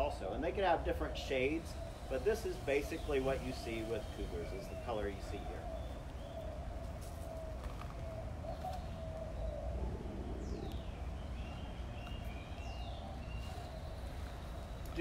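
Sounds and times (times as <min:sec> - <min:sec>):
low outdoor rumble: 0:00.0 - 0:15.0
wavering bird call: 0:00.6 - 0:15.0.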